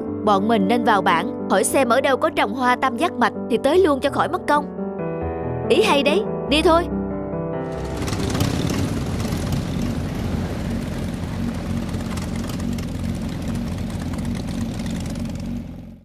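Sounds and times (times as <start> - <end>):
motorbike engines running: 7.7 - 16.0.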